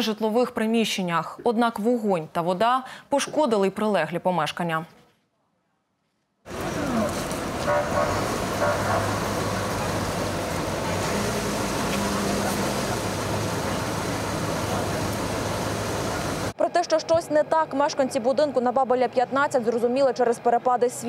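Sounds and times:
faint voices: 6.5s - 16.5s
low engine hum: 6.5s - 16.6s
traffic: 6.5s - 16.6s.

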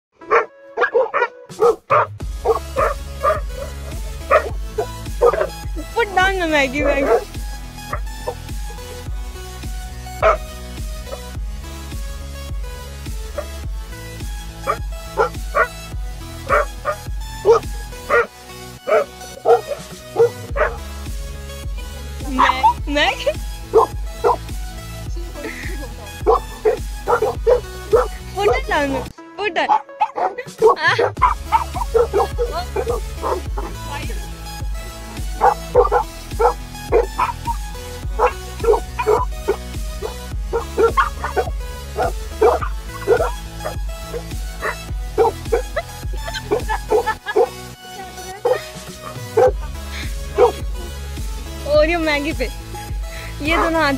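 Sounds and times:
background music: 0.1s - 53.9s
dogs barking: 0.2s - 6.1s, 6.8s - 8.5s, 10.2s - 11.4s, 13.3s - 13.7s, 14.6s - 21.0s, 21.8s - 24.5s, 25.4s - 34.4s, 35.0s - 51.1s, 53.4s - 53.9s.

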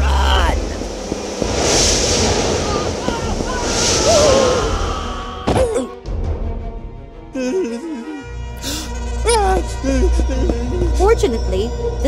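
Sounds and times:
cartoon whirlwind rushing: 0.5s - 5.5s.

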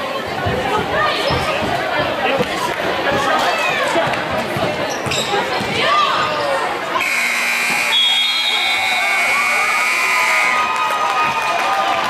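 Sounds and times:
crowd chattering: 0.0s - 12.0s
sneakers squeaking: 1.1s - 1.8s, 4.6s - 6.3s
scoreboard horn blast: 7.0s - 10.7s.

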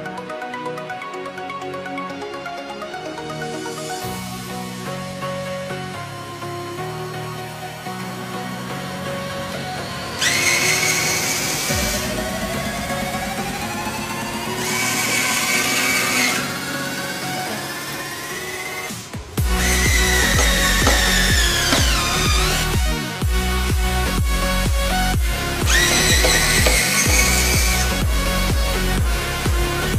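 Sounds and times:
electronic background music: 0.0s - 29.9s
electric screwdriver motor whirring: 10.2s - 11.8s, 19.6s - 22.6s, 25.6s - 27.9s.

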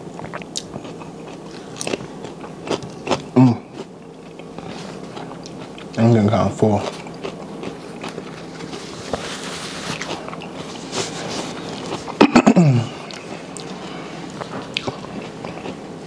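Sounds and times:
chewing and mouth sounds: 0.1s - 6.1s, 6.8s - 15.9s
paper napkin rustling: 7.8s - 12.2s.

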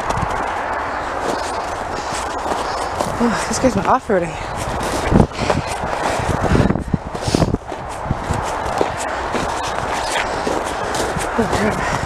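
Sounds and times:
footsteps crunching through snow: 0.0s - 12.0s
steady low rumble: 0.0s - 12.0s.

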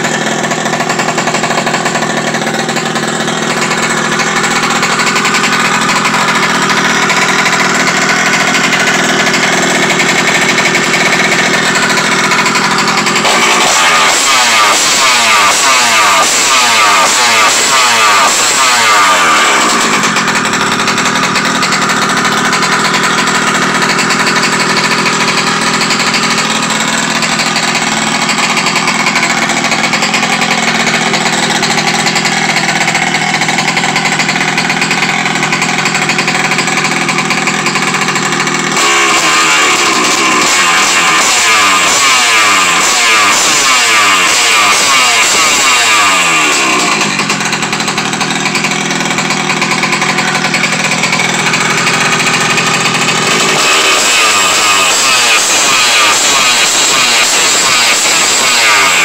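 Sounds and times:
engine throttle blips: 0.0s - 59.0s
two-stroke engine idling: 0.0s - 59.0s.

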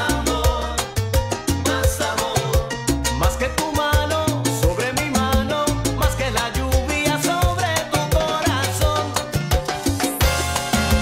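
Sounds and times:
salsa band playing: 0.0s - 11.0s.

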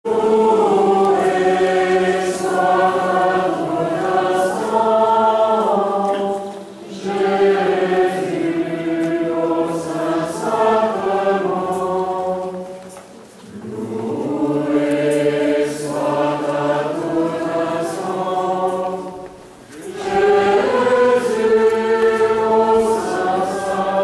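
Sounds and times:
group singing a slow hymn: 0.1s - 24.0s.

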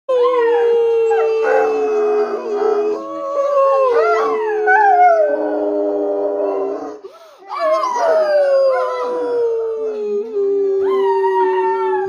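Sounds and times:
dog howling: 0.1s - 12.0s.

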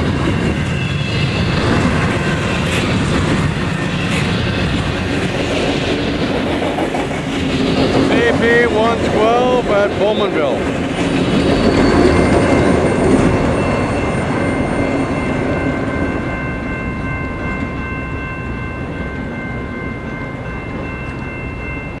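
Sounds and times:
freight train rolling past: 0.0s - 22.0s.

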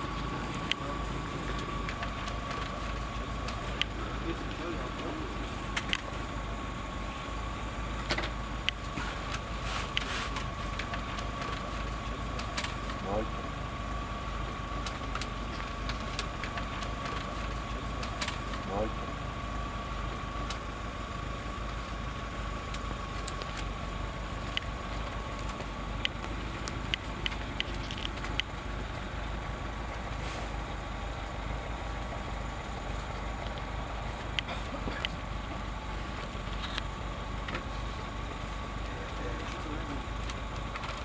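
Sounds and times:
constant high-pitched tone: 0.0s - 41.0s
vehicle engine idling: 0.0s - 41.0s.

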